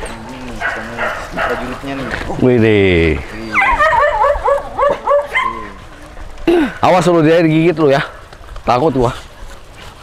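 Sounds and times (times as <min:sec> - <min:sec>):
dogs yipping and whining: 0:03.4 - 0:05.9
dog long low cry: 0:03.4 - 0:06.8.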